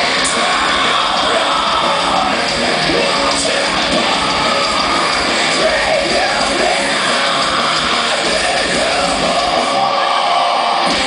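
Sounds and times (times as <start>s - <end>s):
live heavy metal band: 0.0s - 11.0s
screamed vocals: 0.0s - 11.0s.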